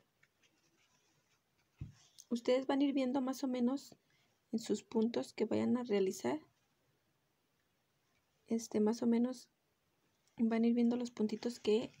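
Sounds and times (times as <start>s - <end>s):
yarn scratching through fabric: 0.4s - 2.2s, 10.8s - 12.0s.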